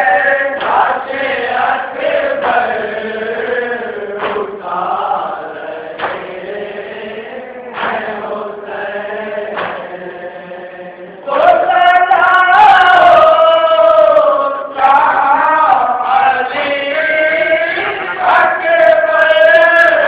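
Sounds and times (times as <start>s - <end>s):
sharp beats: 0.0s - 7.0s, 7.7s - 10.2s
men chanting in unison: 0.0s - 20.0s.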